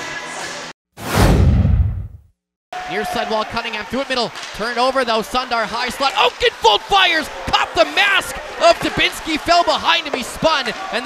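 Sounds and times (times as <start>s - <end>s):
whoosh with deep boom: 1.0s - 2.2s.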